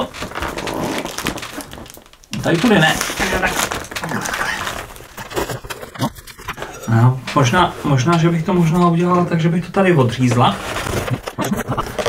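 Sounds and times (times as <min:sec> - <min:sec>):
cardboard box rustling and scraping: 0:00.0 - 0:06.7, 0:10.0 - 0:12.0.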